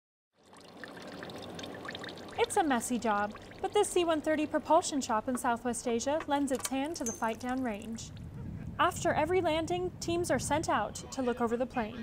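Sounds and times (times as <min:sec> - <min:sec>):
oil pouring in thin stream: 0:00.4 - 0:03.7.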